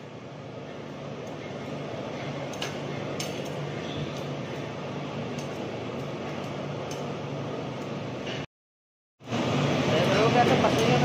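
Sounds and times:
steady low hum: 0.0s - 8.5s
gas burner flame: 9.2s - 11.0s.

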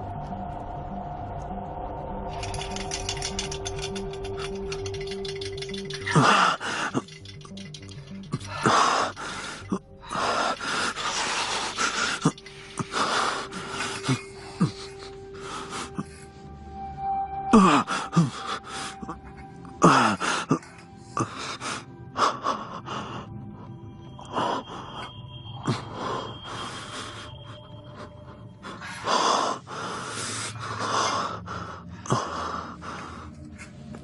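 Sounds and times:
droning horror film score: 0.0s - 34.0s
man gasping and groaning: 3.2s - 16.1s.

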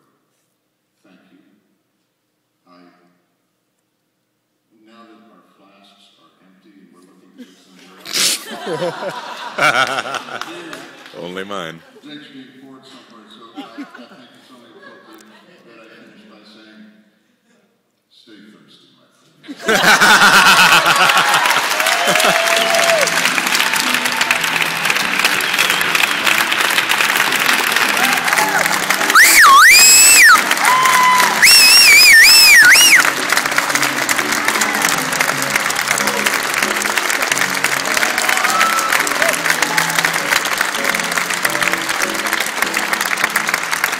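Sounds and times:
audience applauding: 8.5s - 11.8s, 19.7s - 43.9s
music: 20.6s - 43.9s
loud wavering whistle: 29.1s - 30.4s, 31.1s - 33.1s.

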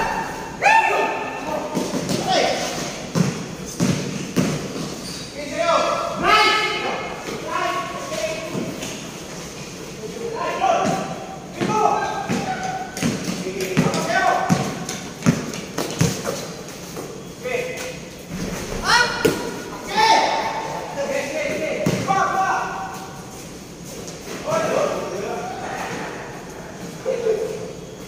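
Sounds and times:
players shouting: 0.0s - 2.7s, 18.7s - 22.8s.

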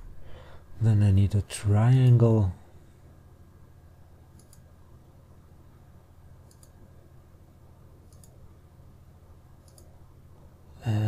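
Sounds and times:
faint low hum: 0.0s - 11.0s
computer mouse clicks: 4.3s - 4.7s, 6.4s - 6.8s, 8.0s - 8.4s, 9.6s - 9.9s.

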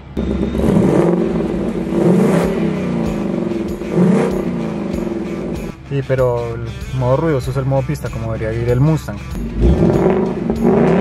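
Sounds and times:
car engine revving: 0.0s - 5.8s, 9.2s - 11.0s.

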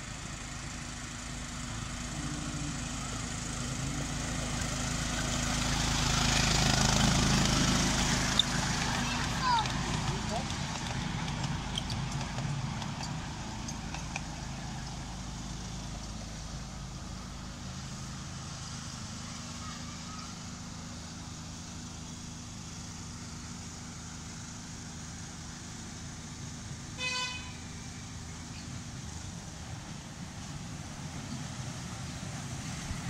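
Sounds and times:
miniature train humming past: 0.0s - 33.0s
train horn toot: 27.0s - 27.7s.

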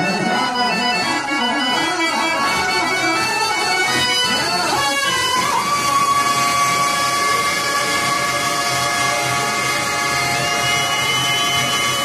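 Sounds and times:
harmonium chord drone: 0.0s - 12.0s.

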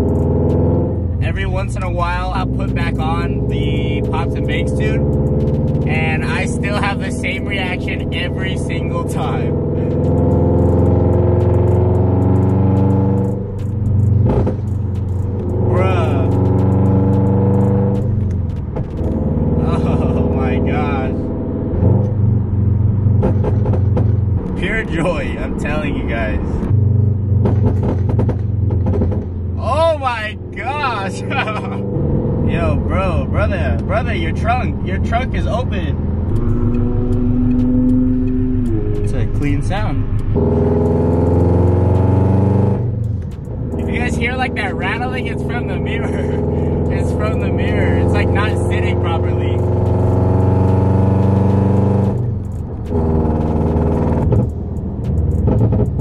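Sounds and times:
car engine droning: 0.0s - 56.0s.

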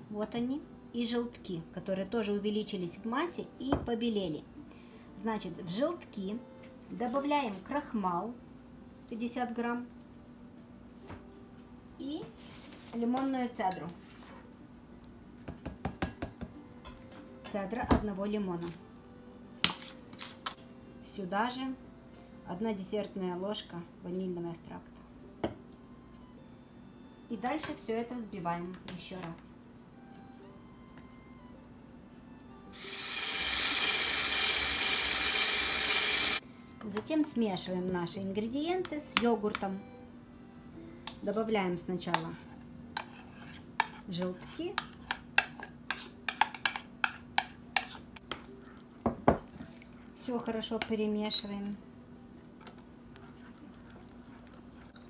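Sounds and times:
utensils rustling and scraping: 19.6s - 20.5s.

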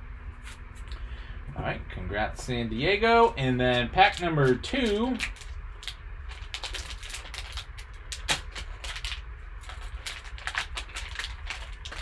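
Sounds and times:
foil wrapper crinkling: 3.3s - 12.0s
foil wrapper snap: 3.6s - 12.0s.

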